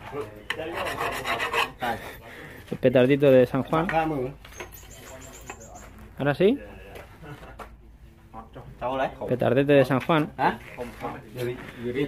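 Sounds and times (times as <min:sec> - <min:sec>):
file rasping on metal: 0:00.5 - 0:02.0.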